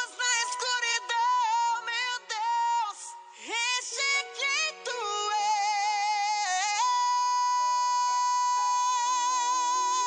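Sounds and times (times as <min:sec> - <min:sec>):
man singing long high note: 0:00.0 - 0:10.0.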